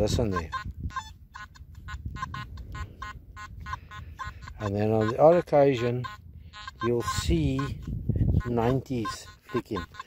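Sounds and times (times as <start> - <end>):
metal detector short beeps: 0.3 - 10.0.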